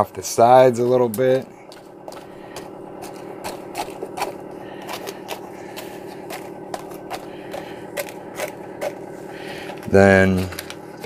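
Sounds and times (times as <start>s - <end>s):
steady low hum: 0.0s - 11.0s
aluminium foil scraping and crinkling: 1.8s - 11.0s.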